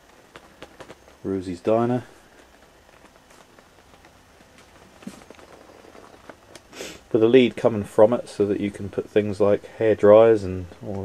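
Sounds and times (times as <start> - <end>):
faint knocks and ticks: 0.0 - 6.7
short hiss: 6.6 - 7.1.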